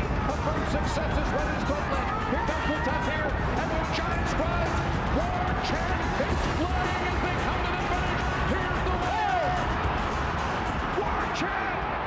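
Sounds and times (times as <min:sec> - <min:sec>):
race announcer calling: 0:00.0 - 0:09.8, 0:10.7 - 0:12.0
music playing: 0:00.0 - 0:12.0
racetrack crowd noise: 0:00.0 - 0:12.0.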